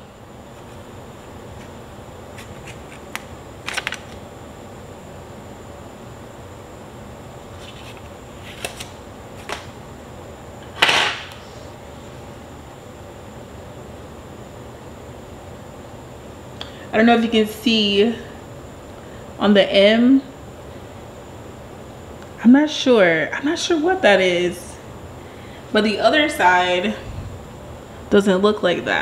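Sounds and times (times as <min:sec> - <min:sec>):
low hum: 0:23.8 - 0:29.0.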